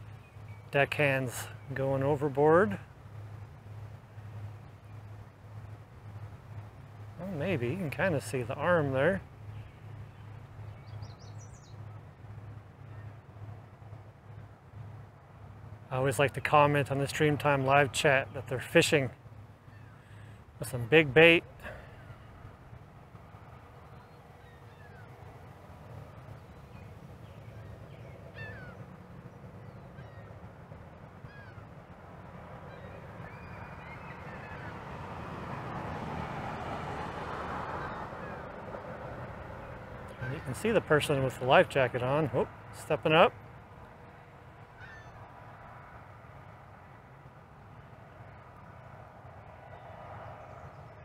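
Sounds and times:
low outdoor rumble: 0:00.0 - 0:51.0
faint bird calls: 0:19.6 - 0:20.4, 0:23.7 - 0:30.6, 0:31.2 - 0:31.8, 0:32.6 - 0:34.9, 0:37.7 - 0:38.5, 0:40.1 - 0:41.4, 0:44.0 - 0:45.4.

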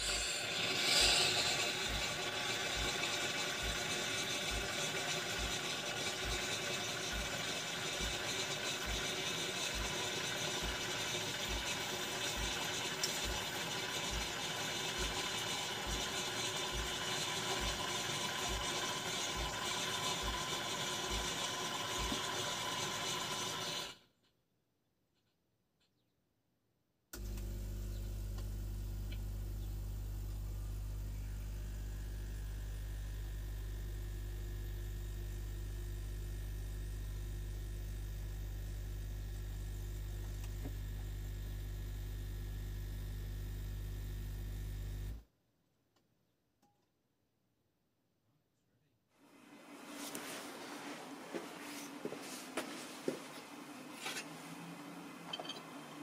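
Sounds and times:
espresso pump humming: 0:00.0 - 0:24.0, 0:27.9 - 0:44.6, 0:49.4 - 0:56.0
milk frother hissing: 0:00.0 - 0:24.0.

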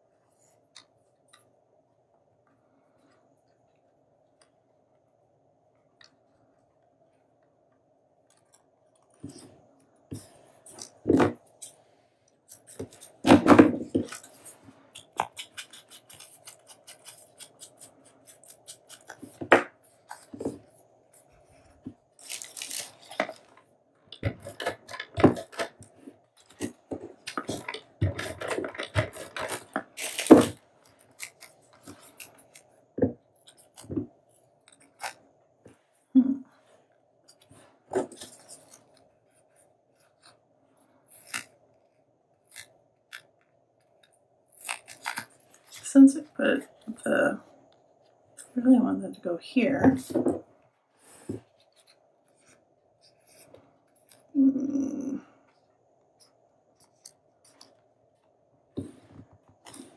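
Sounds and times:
paper rustling: 0:15.3 - 0:23.6, 0:24.2 - 0:32.7.

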